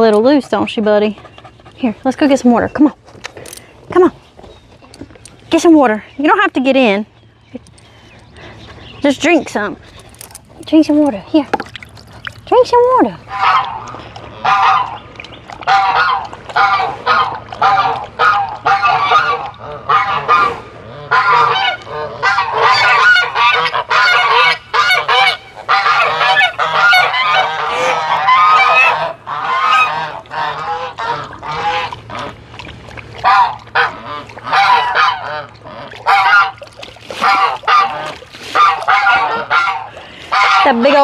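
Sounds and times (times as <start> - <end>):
geese honking: 13.3 - 32.4, 33.2 - 36.6, 37.2 - 41.0.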